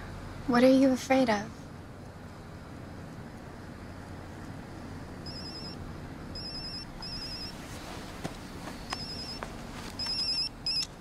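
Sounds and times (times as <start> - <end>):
low background noise: 0.0 - 11.0
mobile phone ringing: 5.2 - 7.6, 8.9 - 11.0.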